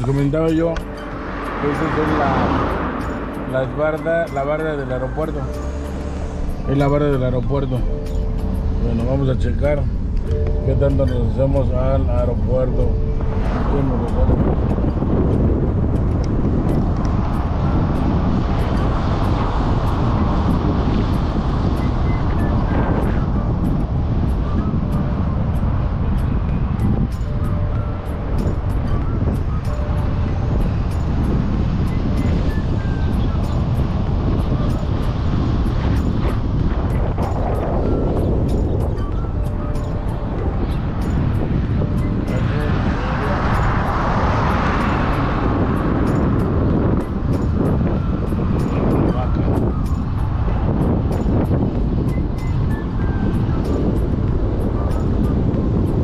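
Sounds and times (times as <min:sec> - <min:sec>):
road and wind rumble in car: 0:00.0 - 0:56.0.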